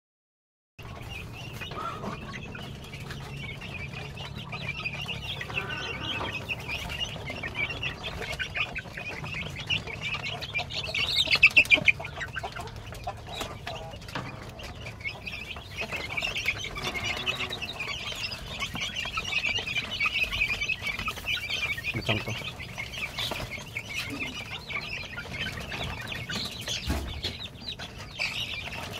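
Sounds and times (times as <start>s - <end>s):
chicks peeping: 0.8s - 28.9s.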